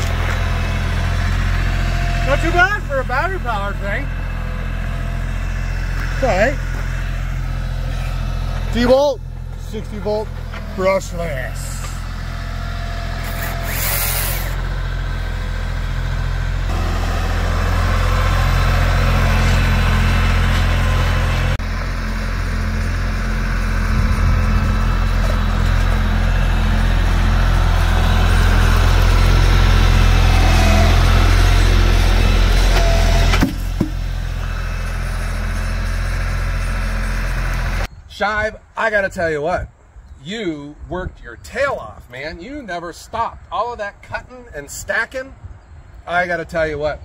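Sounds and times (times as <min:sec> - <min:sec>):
tractor engine running: 0:00.0 - 0:37.9.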